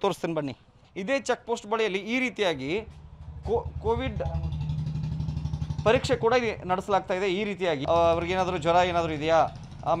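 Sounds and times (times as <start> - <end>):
vehicle engine idling: 2.7 - 10.0.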